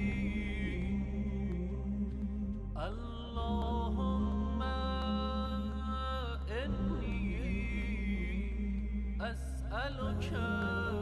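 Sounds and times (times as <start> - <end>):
slow devotional music: 0.0 - 11.0
steady low drone: 0.0 - 11.0.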